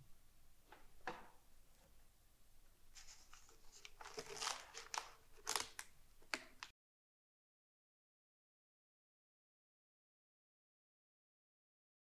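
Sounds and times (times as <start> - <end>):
book pages rustling: 3.0 - 6.7
sharp paper crackles and taps: 3.2 - 6.7.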